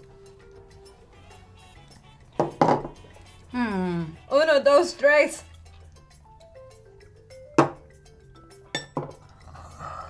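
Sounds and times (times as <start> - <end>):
shot glasses knocking on table: 2.4 - 3.0, 7.6 - 7.8, 8.8 - 9.2.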